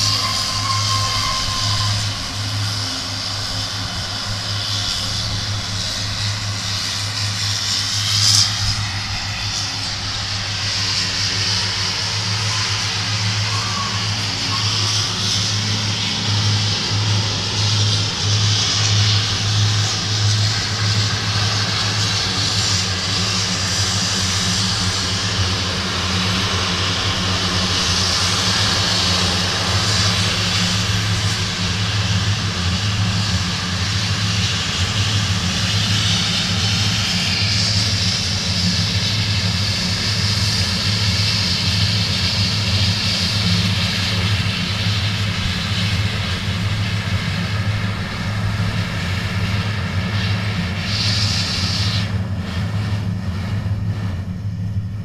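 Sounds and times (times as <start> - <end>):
high rushing turbine noise: 0.0 - 55.0
low propeller hum: 0.0 - 55.0
turboprop engines running: 0.0 - 55.0.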